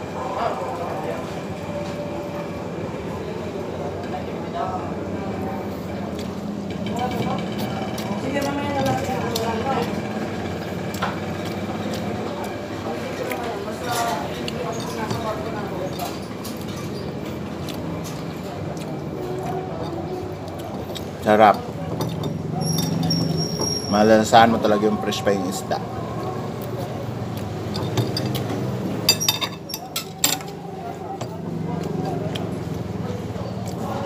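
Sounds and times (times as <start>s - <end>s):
indistinct background conversation: 0.0s - 34.0s.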